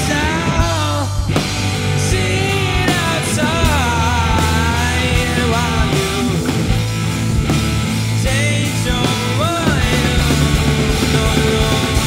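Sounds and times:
drum kit: 0:00.0 - 0:12.0
electric guitar: 0:00.0 - 0:12.0
keyboard: 0:00.0 - 0:12.0.

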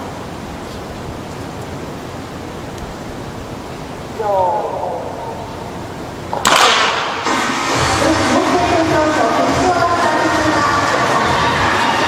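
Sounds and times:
starting gun shot: 0:06.3 - 0:07.7.

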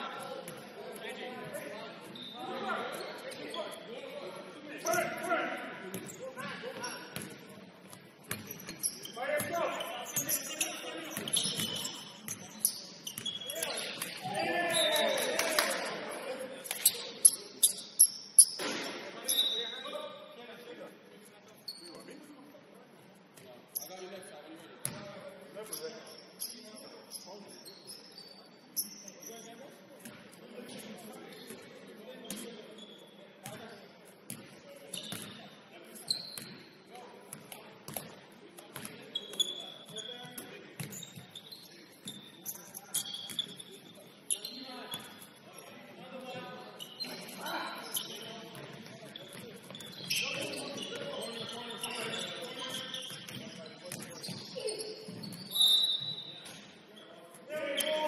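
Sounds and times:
shoes squeaking on court: 0:00.1 - 0:03.9, 0:04.7 - 0:15.9, 0:16.6 - 0:20.2, 0:21.4 - 0:22.3, 0:23.4 - 0:31.6, 0:32.2 - 0:58.0.

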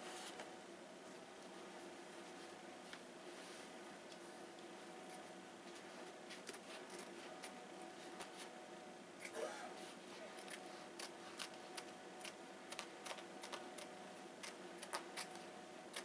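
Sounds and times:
scissors snipping fabric: 0:10.4 - 0:16.0.

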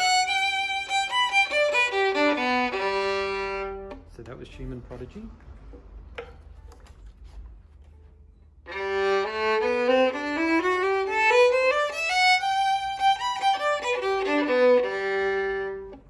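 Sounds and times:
violin bowed: 0:00.0 - 0:04.1, 0:08.6 - 0:16.0.

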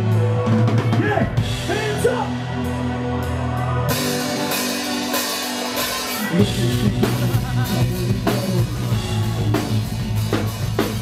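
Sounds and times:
drum kit: 0:00.0 - 0:03.0, 0:03.9 - 0:11.0
distorted guitars: 0:00.0 - 0:11.0
loud live rock band: 0:00.0 - 0:11.0.

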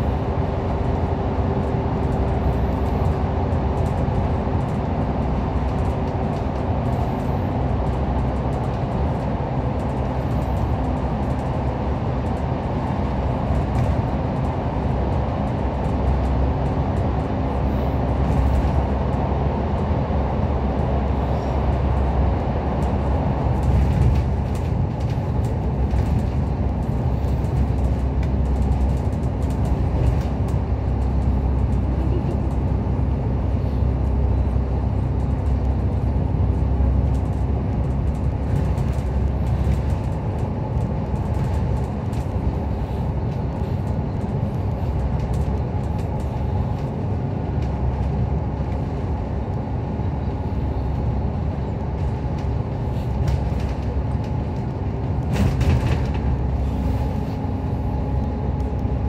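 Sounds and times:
body ticks and rattles: 0:00.0 - 0:59.0
bus engine drone: 0:00.0 - 0:59.0
constant hum: 0:00.0 - 0:59.0
tyre and road noise: 0:00.0 - 0:59.0.

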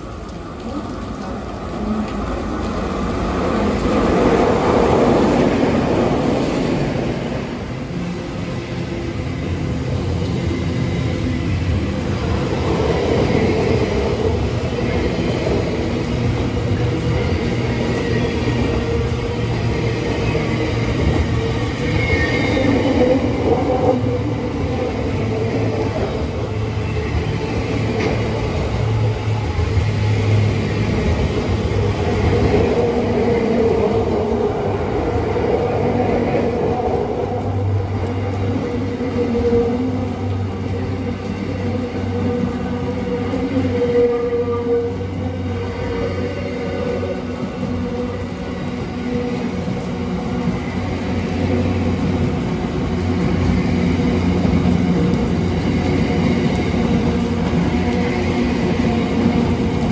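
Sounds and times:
freight train wheels rumbling: 0:00.0 - 0:59.9
high squealing of wheels: 0:19.8 - 0:23.4.

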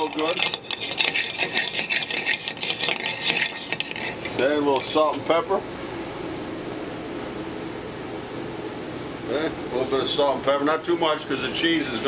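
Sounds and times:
metal spoon scraping a skillet: 0:00.0 - 0:05.0.

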